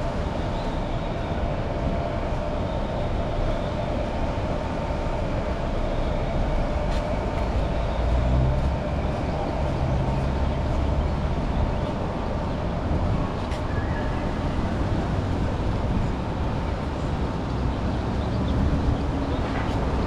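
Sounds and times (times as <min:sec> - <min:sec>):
road traffic going by: 0:00.0 - 0:20.0.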